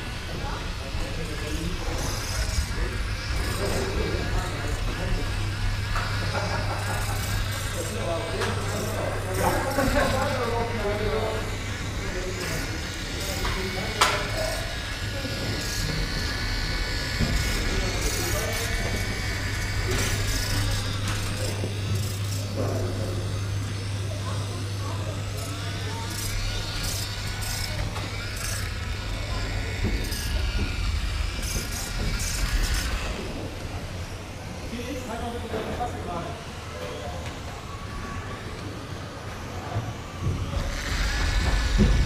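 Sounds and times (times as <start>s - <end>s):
background chatter of people: 0.0s - 42.0s
steady low hum: 0.0s - 42.0s
toy tractor motor running: 0.0s - 42.0s.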